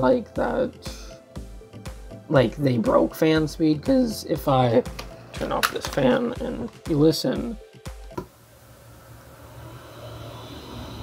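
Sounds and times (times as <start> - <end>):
computer fan whooshing: 8.4 - 11.0.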